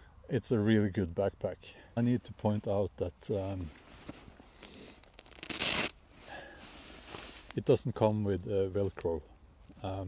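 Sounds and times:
hand rubbing backpack fabric: 3.4 - 7.8.

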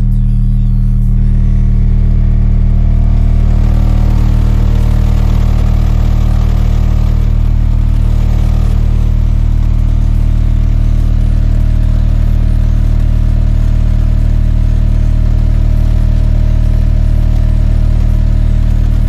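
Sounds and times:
low test tone through subwoofer: 0.0 - 19.0.

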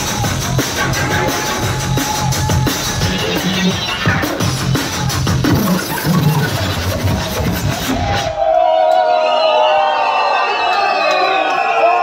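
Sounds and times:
drum and bass music: 0.0 - 8.5.

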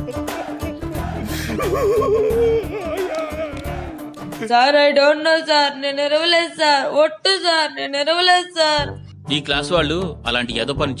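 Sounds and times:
low beat: 0.0 - 4.4.

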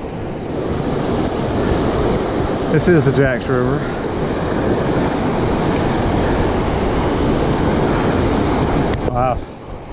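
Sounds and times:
river rushing over rapids: 0.0 - 9.9.

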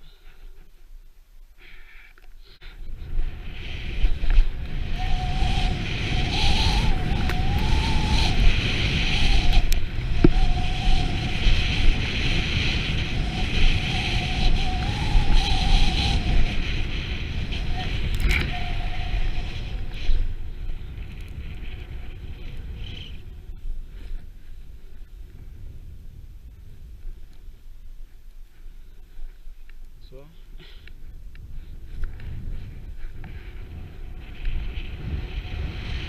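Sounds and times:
wind on microphone: 2.7 - 30.3, 31.0 - 36.0
faint wavering whistle: 4.8 - 12.0, 13.4 - 16.9, 17.5 - 20.2
snowboard sliding on snow: 9.8 - 26.9, 32.2 - 36.0.

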